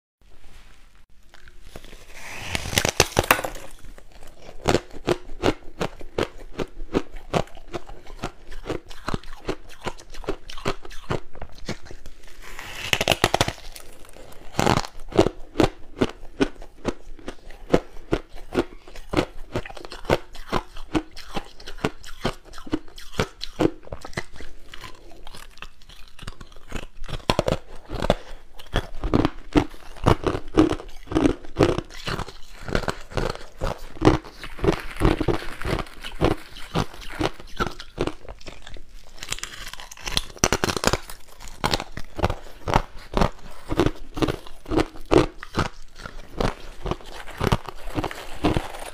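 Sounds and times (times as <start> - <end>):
chewing crunchy ice: 1.2 - 48.9.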